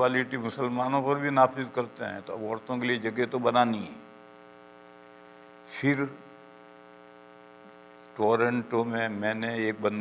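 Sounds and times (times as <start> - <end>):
man speaking: 0.0 - 4.1, 5.7 - 6.3, 8.2 - 10.0
electrical mains hum: 0.0 - 10.0.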